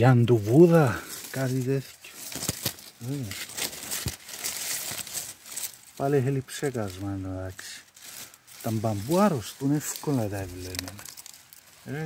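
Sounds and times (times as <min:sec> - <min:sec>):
bamboo leaves rustling and crackling: 0:00.0 - 0:12.0.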